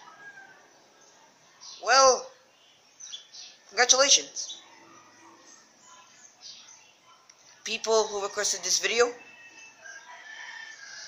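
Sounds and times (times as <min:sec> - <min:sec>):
rooster crowing faintly: 0:00.0 - 0:00.9, 0:04.6 - 0:05.9, 0:08.0 - 0:11.0.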